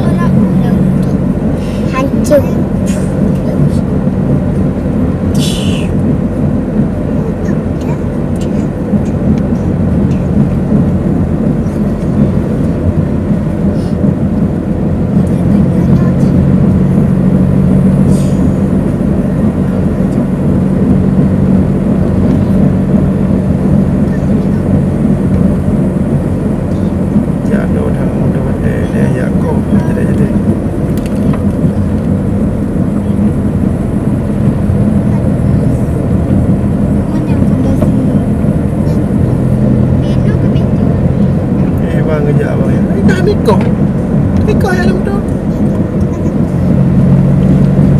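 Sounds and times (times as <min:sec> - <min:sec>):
car engine drone: 0:00.0 - 0:47.9
tyre noise on road: 0:00.0 - 0:47.9.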